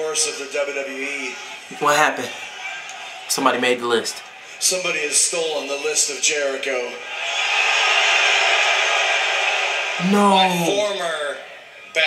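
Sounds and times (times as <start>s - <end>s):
arena crowd roar: 7.0s - 11.9s.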